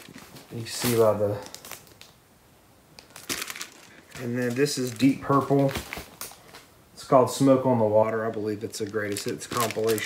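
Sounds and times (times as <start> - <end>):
plastic sleeves crinkling: 0.0 - 2.2, 3.0 - 6.7, 7.3 - 10.0.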